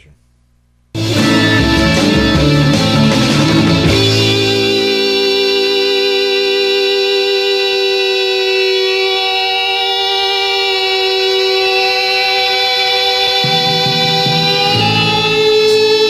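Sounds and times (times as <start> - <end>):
distorted electric guitar note: 1.0 - 16.0.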